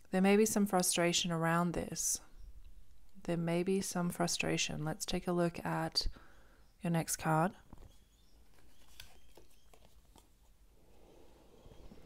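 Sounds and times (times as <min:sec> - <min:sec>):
soft card rustle: 0:07.7 - 0:12.0
cardboard cards clicking: 0:08.5 - 0:10.3.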